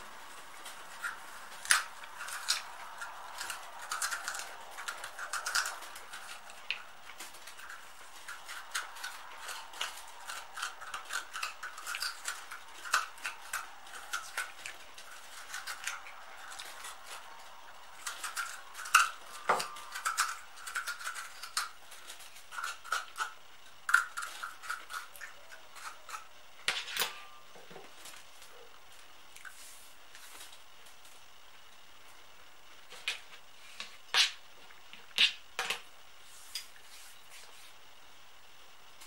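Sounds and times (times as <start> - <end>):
knife scraping radish flesh: 18.0 - 23.3.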